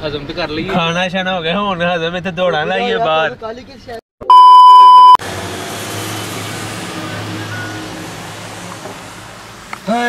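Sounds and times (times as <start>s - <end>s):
electronic test-tone beep: 4.2s - 5.2s
car driving on wet street: 5.2s - 10.0s.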